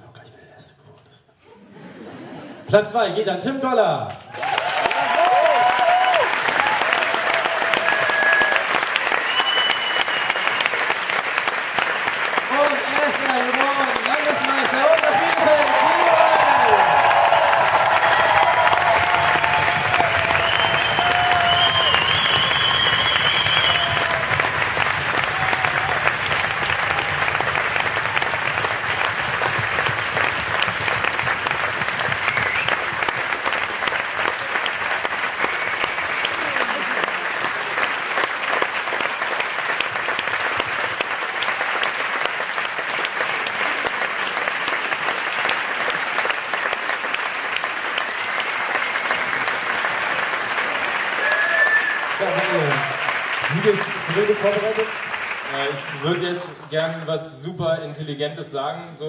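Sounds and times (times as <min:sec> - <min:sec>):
audience applause: 0:04.1 - 0:57.9.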